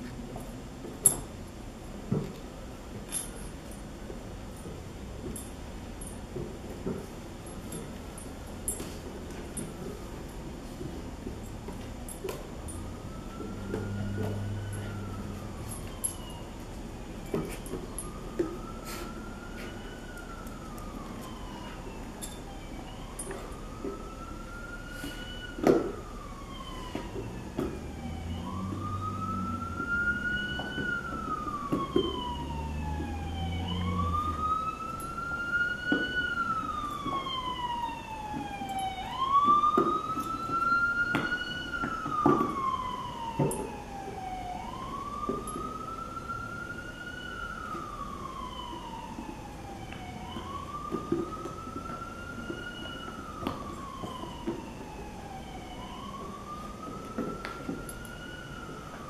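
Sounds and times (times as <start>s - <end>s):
siren wailing: 11.2s - 59.0s.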